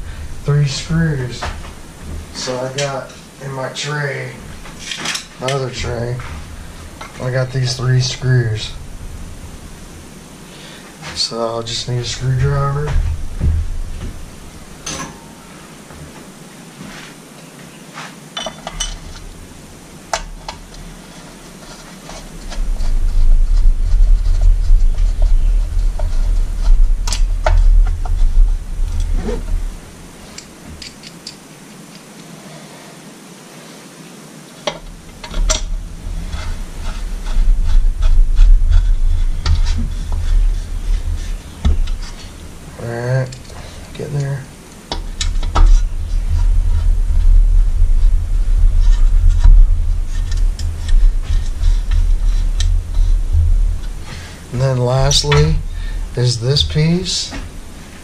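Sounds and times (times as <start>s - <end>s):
low rumbling handling noise: 0.0s - 17.2s, 18.4s - 31.9s, 34.6s - 58.0s.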